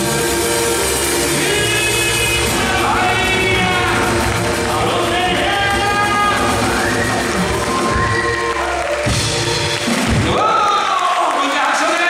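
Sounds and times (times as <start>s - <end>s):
drum kit beat: 0.0s - 11.2s
congas: 0.0s - 11.8s
man singing: 1.2s - 7.2s.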